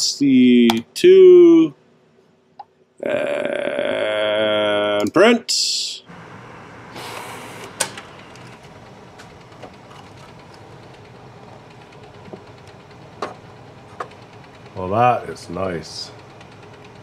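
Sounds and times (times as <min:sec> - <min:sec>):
printer whirring: 0:06.1 - 0:17.0
printer hiss: 0:06.9 - 0:08.6
sharp printer clicks: 0:16.1 - 0:17.0.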